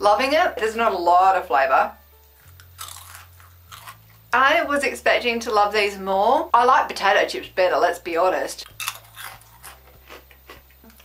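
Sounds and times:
person chewing crispy snack: 2.4 - 4.2, 8.6 - 11.0.

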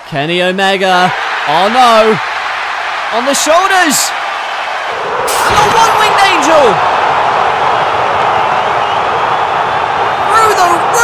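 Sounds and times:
arena crowd cheering: 0.0 - 11.0.

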